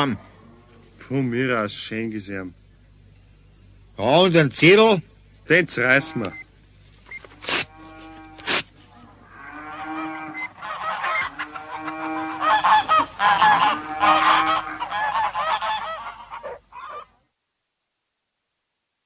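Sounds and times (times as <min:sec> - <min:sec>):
geese honking and cackling: 0:05.8 - 0:06.4, 0:07.7 - 0:17.2
short rips: 0:07.2 - 0:08.7.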